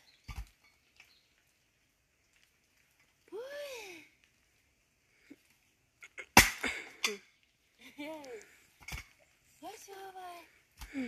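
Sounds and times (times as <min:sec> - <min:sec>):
axe striking wood: 0:06.4 - 0:06.8.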